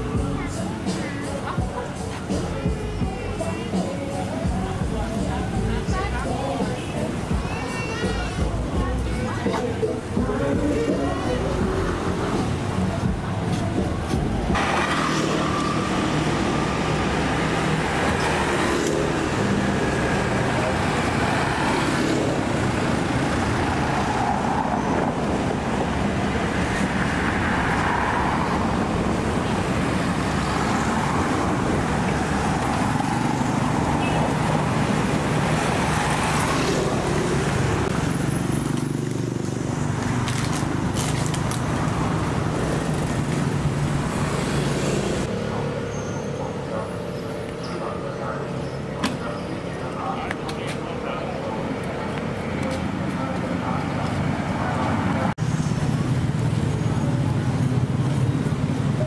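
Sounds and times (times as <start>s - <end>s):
people's voices: 0.0s - 38.1s, 39.6s - 55.4s
road traffic: 0.0s - 59.0s.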